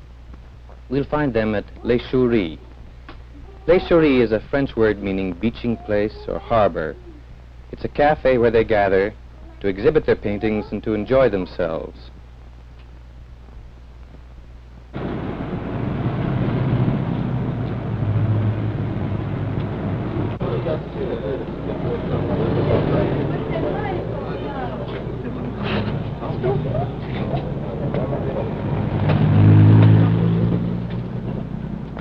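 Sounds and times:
vehicle engines rumbling: 0:15.0 - 0:32.0.

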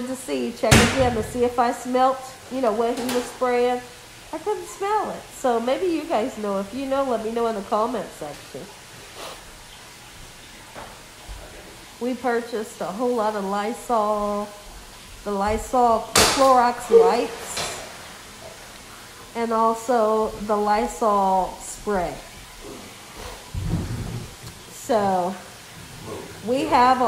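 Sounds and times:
faint room noise: 0:00.0 - 0:27.0
steady low hiss: 0:00.0 - 0:27.0.

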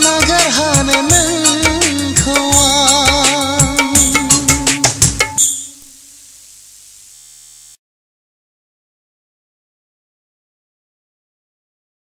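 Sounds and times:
steady background hiss: 0:00.0 - 0:07.8
faint hum: 0:03.8 - 0:07.8.

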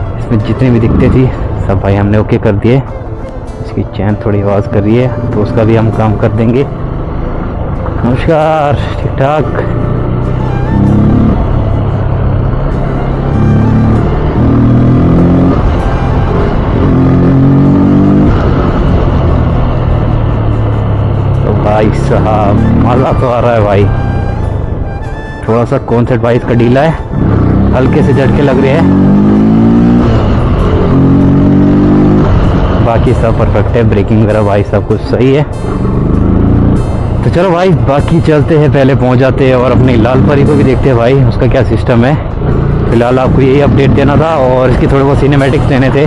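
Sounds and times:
road and wind noise: 0:00.0 - 0:46.0
motorcycle engine running: 0:05.3 - 0:25.2, 0:26.6 - 0:34.4, 0:35.0 - 0:46.0.

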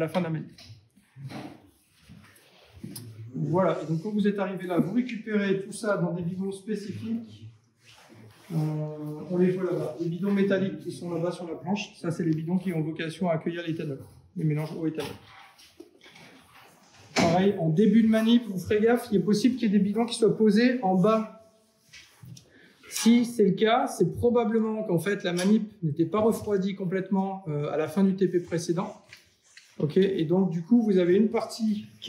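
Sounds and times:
man speaking: 0:00.0 - 0:00.6, 0:02.8 - 0:07.5, 0:08.4 - 0:15.2, 0:17.2 - 0:21.4, 0:22.9 - 0:32.0.

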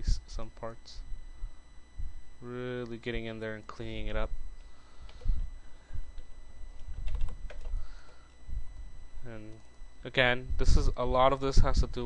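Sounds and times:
keyboard keys clicking: 0:06.8 - 0:07.7.

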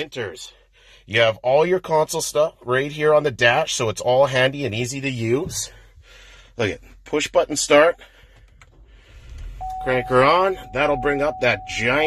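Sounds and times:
car engine cranking and starting: 0:07.2 - 0:12.0.

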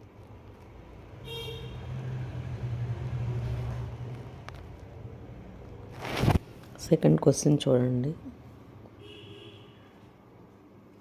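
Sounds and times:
vehicle engine hum: 0:00.0 - 0:06.8
vehicle horn toot: 0:01.2 - 0:02.0, 0:09.0 - 0:09.9.

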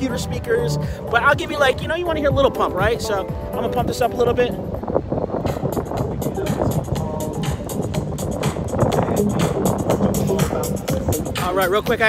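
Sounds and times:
music with steady beat over speaker: 0:00.0 - 0:12.0.

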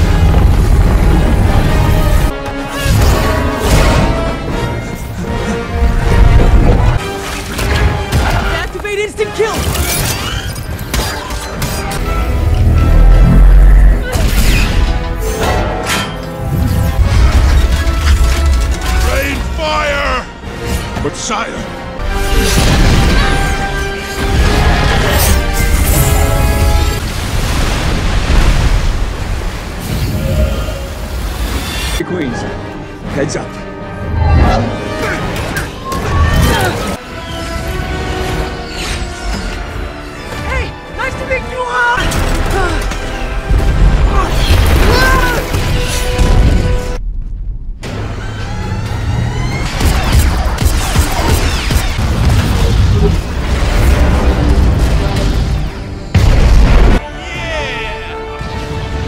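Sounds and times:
explosions and booms: 0:00.0 - 0:04.6, 0:22.2 - 0:31.6, 0:43.2 - 0:48.2, 0:49.6 - 0:57.1
floodwater rushing and crashing: 0:00.0 - 0:09.3, 0:22.0 - 0:33.0
orchestral score: 0:00.0 - 0:27.5, 0:29.8 - 0:47.0, 0:47.8 - 0:59.0.

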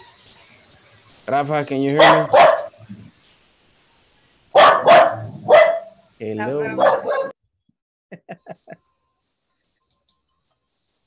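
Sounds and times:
dog barking: 0:02.0 - 0:02.8, 0:04.6 - 0:07.4.

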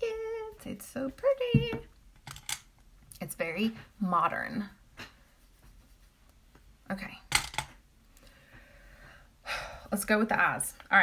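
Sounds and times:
makeup items clicking and knocking: 0:01.6 - 0:02.7, 0:07.3 - 0:07.8.

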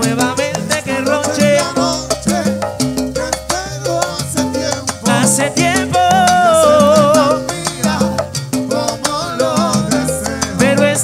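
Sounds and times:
salsa orchestra playing: 0:00.0 - 0:11.0.

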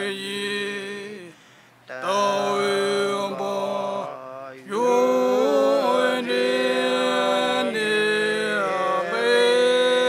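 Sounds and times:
men chanting in unison: 0:00.0 - 0:10.0.

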